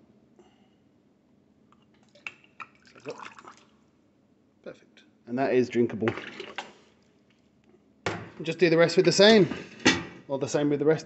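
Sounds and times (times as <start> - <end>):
beer pouring into glass: 2.6 - 3.8, 6.0 - 6.7.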